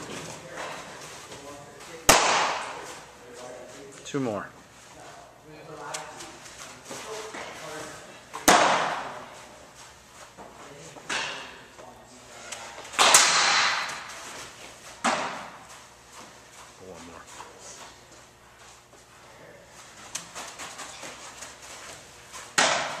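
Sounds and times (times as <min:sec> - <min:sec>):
baseball impacts in indoor room: 0:00.0 - 0:23.0.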